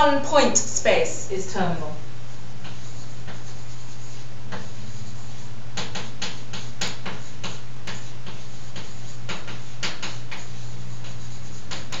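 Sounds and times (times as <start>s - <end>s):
steady low hum: 0.0s - 12.0s
chalk tapping and scratching: 2.2s - 12.0s.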